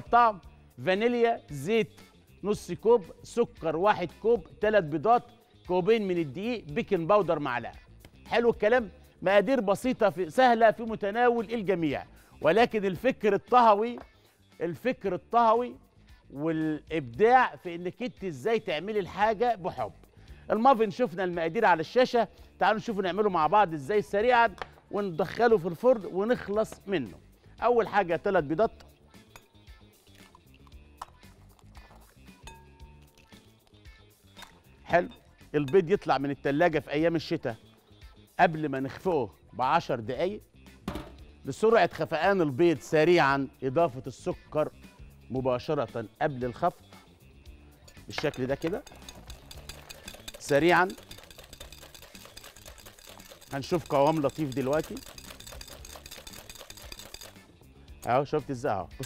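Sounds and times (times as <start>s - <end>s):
faint background music: 0.0s - 59.0s
eggs cracking: 29.3s - 34.7s, 47.9s - 57.5s
wire whisk clicking on glass bowl: 48.2s - 57.4s.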